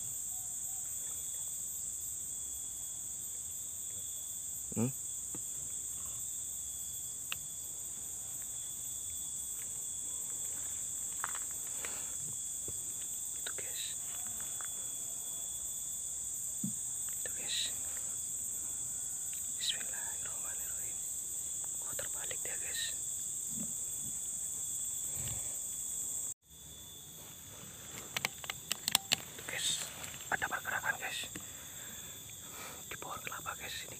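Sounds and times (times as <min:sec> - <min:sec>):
insects droning: 0:00.0 - 0:33.9
sharp clicks: 0:28.0 - 0:29.3.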